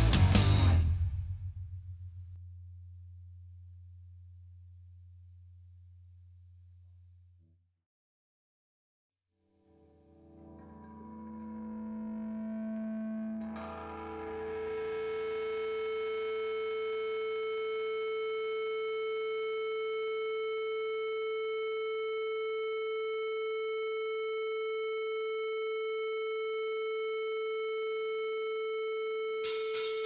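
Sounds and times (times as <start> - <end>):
drum beat: 29.4 - 30.0
steady electronic tone: 29.4 - 30.0.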